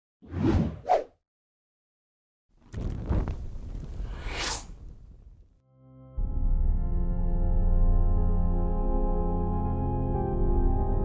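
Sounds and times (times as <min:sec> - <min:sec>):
whoosh sound effects: 0:04.0 - 0:04.8.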